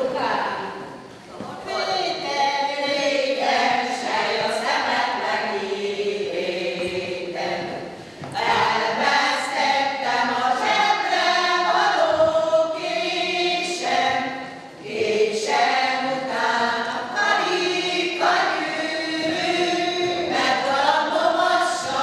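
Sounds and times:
group of women singing: 0.0s - 0.8s, 1.6s - 22.0s.

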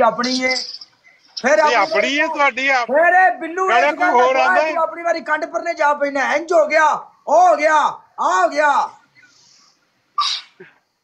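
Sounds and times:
person sneezing: 10.2s - 10.8s.

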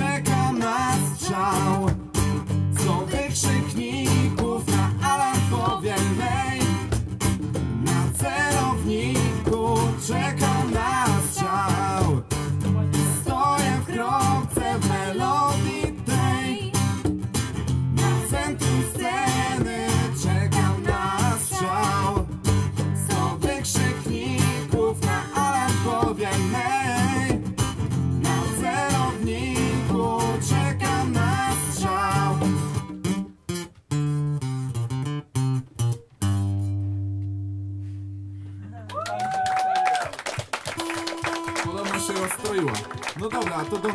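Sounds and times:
person singing: 0.0s - 2.0s, 2.8s - 6.9s, 7.8s - 16.9s, 18.0s - 27.4s, 28.2s - 32.6s
acoustic guitar strumming: 0.0s - 38.6s, 40.8s - 43.9s.

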